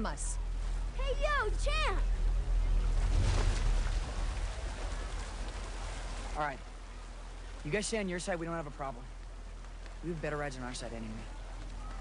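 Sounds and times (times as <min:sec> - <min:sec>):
steady low rumble: 0:00.0 - 0:12.0
rushing water: 0:00.4 - 0:12.0.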